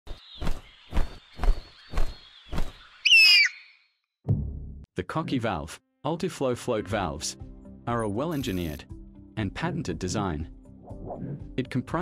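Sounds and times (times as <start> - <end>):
wing-flap whooshes: 0.1 - 2.8
cockatoo screech: 3.1 - 3.8.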